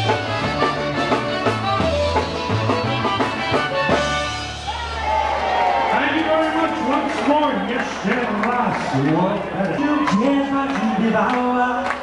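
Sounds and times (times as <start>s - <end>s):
man talking over sound system: 5.8s - 12.0s.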